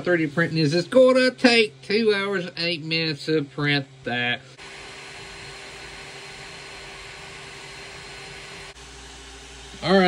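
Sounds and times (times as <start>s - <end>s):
cooling fans whirring: 0.0s - 10.0s.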